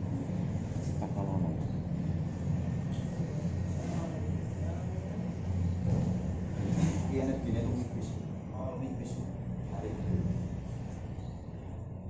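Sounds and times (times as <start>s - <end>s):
low background rumble: 0.0s - 12.0s.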